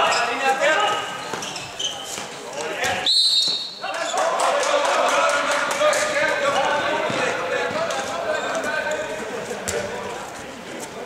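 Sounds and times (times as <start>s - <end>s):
referee whistle: 3.0s - 3.8s
players shouting: 3.8s - 9.4s.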